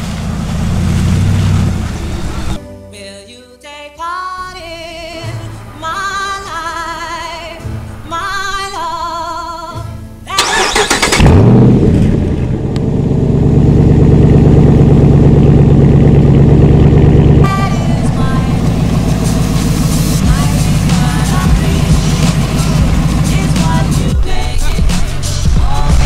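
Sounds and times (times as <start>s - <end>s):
truck engine starting and idling: 0.0s - 2.6s, 4.5s - 26.0s.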